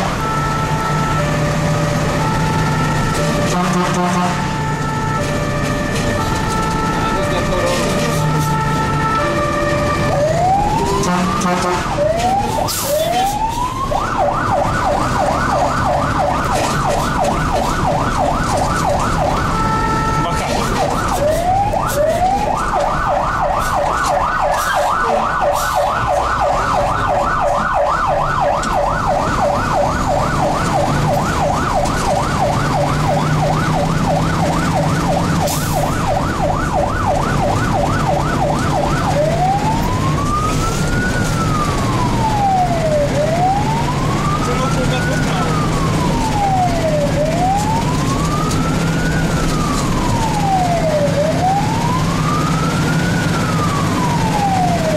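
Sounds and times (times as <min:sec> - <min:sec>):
fire engine siren: 0:00.0 - 0:54.9
truck engine hum: 0:00.0 - 0:54.9.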